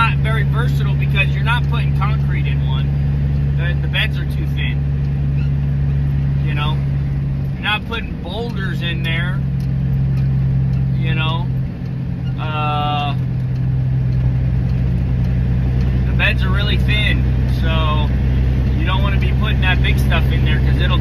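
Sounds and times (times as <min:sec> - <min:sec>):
diesel engine droning: 0:00.0 - 0:21.0.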